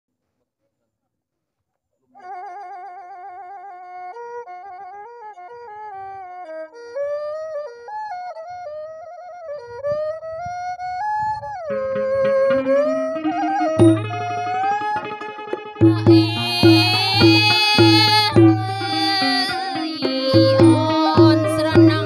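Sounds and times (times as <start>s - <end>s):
flute-like melody: 2.2s - 22.0s.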